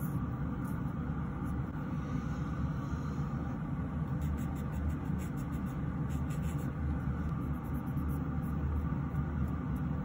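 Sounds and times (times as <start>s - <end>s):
fan whirring: 0.0s - 10.0s.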